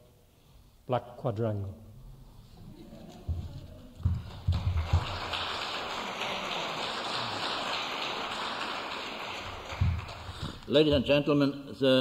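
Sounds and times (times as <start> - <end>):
audience applauding: 4.0 - 10.7.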